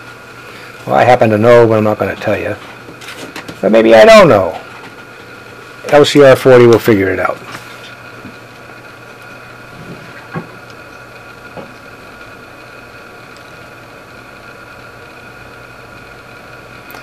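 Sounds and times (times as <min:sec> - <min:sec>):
low electrical hum and hiss: 0:00.0 - 0:17.0.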